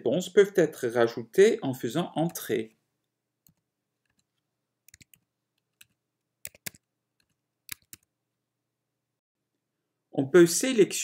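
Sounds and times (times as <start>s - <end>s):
computer keyboard keystrokes: 4.9s - 8.1s.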